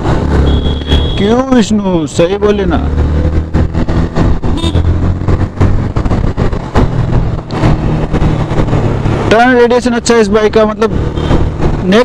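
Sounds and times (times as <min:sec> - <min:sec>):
wind buffeting microphone: 0:02.9 - 0:09.4.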